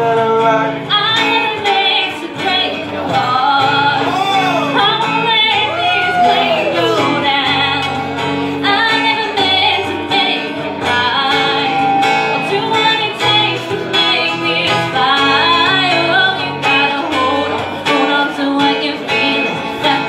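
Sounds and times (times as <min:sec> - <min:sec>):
man and woman singing: 0:00.0 - 0:20.0
strummed acoustic guitar: 0:00.0 - 0:20.0.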